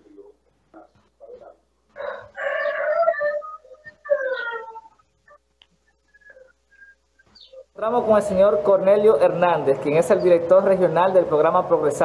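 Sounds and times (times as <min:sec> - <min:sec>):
drawn-out animal calls: 0:00.8 - 0:07.7.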